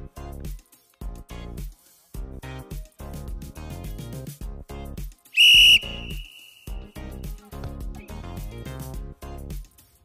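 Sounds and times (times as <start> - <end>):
background music with a beat: 0.0 - 10.0
high-pitched whistle blast: 5.4 - 6.8.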